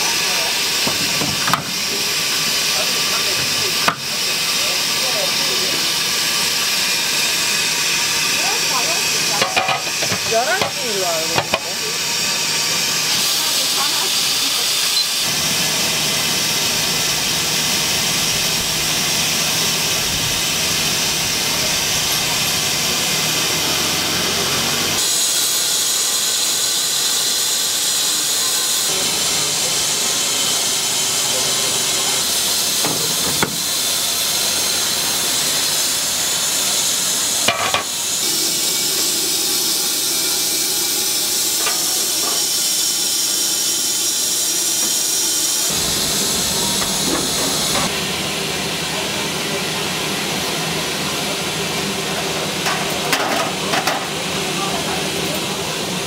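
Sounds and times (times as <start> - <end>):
steam hissing: 0.0 - 56.0.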